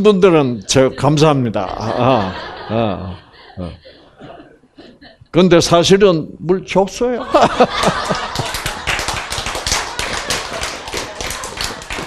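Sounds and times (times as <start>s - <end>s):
small audience clapping: 7.6s - 12.0s.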